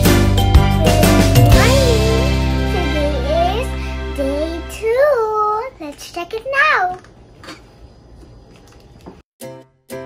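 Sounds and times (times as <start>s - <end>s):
girl's sing-song voice: 1.5s - 6.0s.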